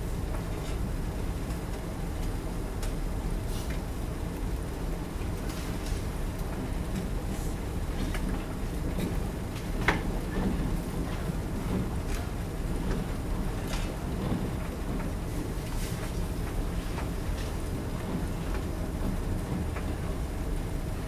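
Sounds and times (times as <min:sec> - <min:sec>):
low room rumble: 0:00.0 - 0:21.0.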